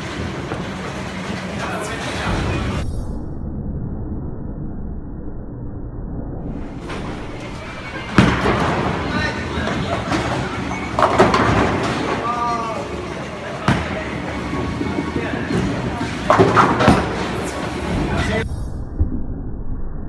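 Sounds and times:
bowling ball rolling rumble: 6.1s - 12.2s
bowling pins clattering: 6.8s - 12.3s, 13.5s - 18.4s.

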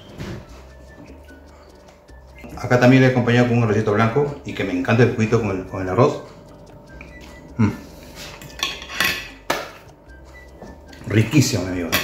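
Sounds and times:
metal fork clinking on a plate: 8.4s - 9.4s.

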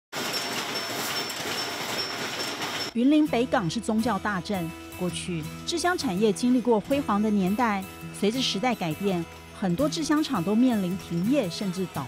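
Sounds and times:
machinery clattering: 0.1s - 3.0s.

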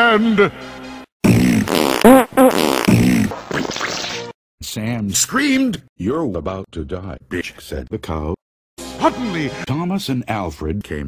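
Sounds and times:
fart sound effect: 1.3s - 4.3s.

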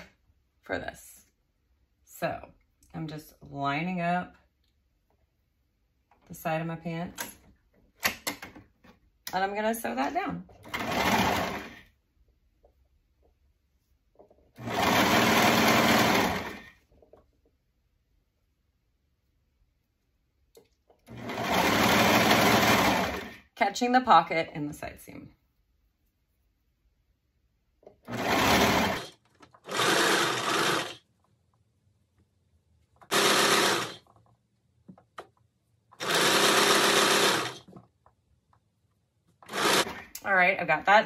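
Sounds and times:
overlocker stitching: 10.5s - 11.9s, 14.4s - 17.2s, 20.6s - 23.4s, 27.8s - 31.4s, 32.8s - 38.2s, 39.3s - 40.3s.

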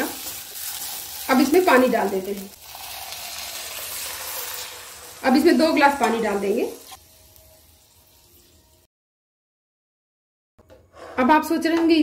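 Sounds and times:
food sizzling in oil: 0.0s - 8.9s.

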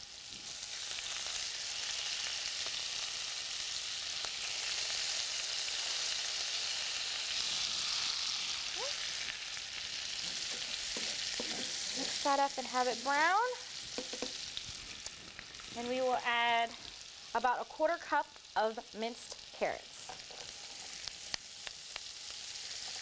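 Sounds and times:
onion and garlic sizzling in pan: 0.0s - 23.0s.

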